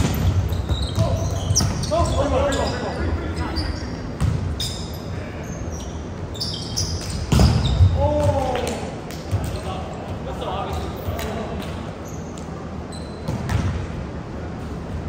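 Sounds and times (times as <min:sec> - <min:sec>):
sneakers squeaking on wooden floor: 0:00.0 - 0:08.4, 0:12.0 - 0:13.7.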